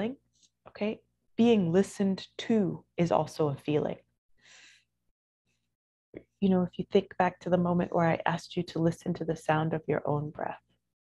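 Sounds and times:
faint breath: 4.4 - 4.9.

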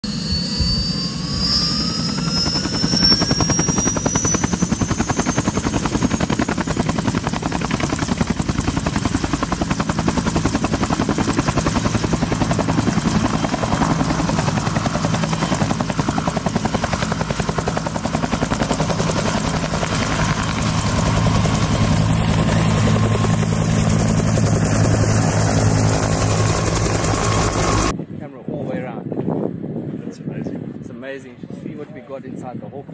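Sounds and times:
helicopter rotor beat: 0.0 - 28.0
turbine whine: 0.0 - 28.0.

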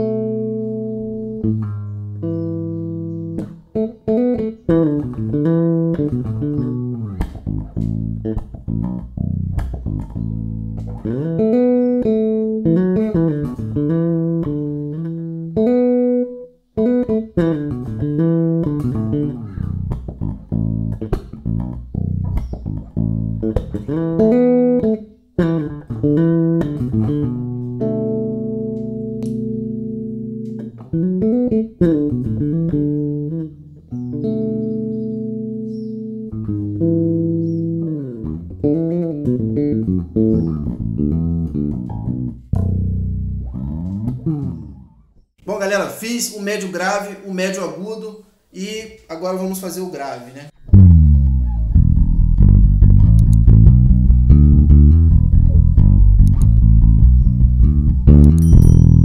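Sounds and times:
electric bass plucked notes: 0.0 - 45.3, 50.6 - 59.0.

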